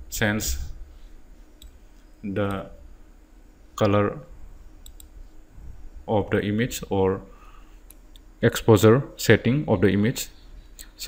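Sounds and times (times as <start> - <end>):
low background hiss: 0.0 - 11.0
computer mouse clicks: 4.8 - 5.2.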